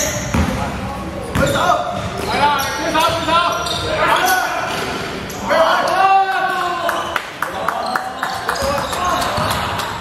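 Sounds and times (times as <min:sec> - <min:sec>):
shoes squeaking on hardwood court: 0:00.0 - 0:00.6, 0:01.2 - 0:06.0, 0:07.8 - 0:09.6.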